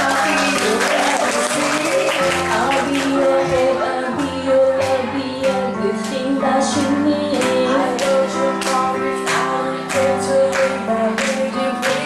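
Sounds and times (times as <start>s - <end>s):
audience applauding: 0.0s - 3.4s.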